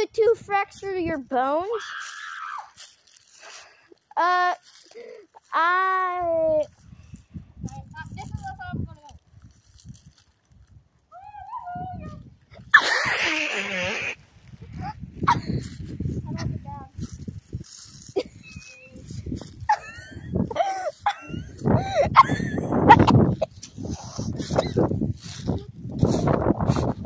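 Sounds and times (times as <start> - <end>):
child's high-pitched voice: 0.0 - 2.1, 4.1 - 4.8, 5.4 - 6.8, 7.6 - 9.2, 11.1 - 12.3, 16.2 - 17.1, 18.3 - 19.3.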